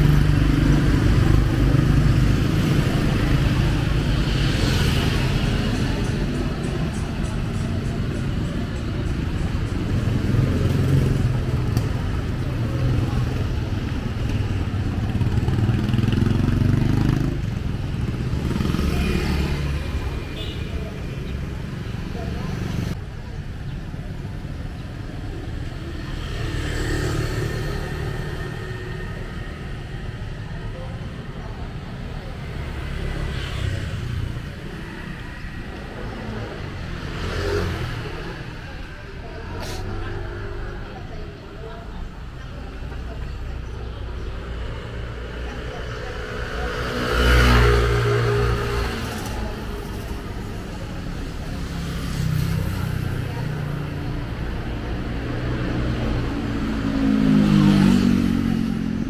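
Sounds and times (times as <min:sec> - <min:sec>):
car engines passing: 0:00.0 - 0:59.0
motorcycle engines passing: 0:00.0 - 0:59.0.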